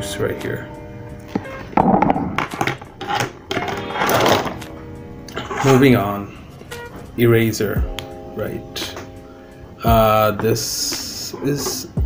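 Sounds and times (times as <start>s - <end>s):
background music: 0.0s - 12.0s
pens clattering on wooden desk: 1.3s - 4.7s.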